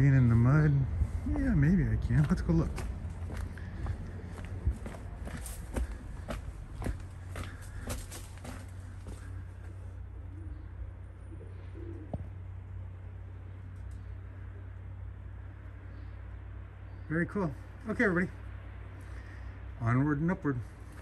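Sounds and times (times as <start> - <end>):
steady low rumble: 0.0 - 21.0
footsteps on dirt path: 1.0 - 9.8, 20.7 - 21.0
pigeon cooing: 5.7 - 12.5.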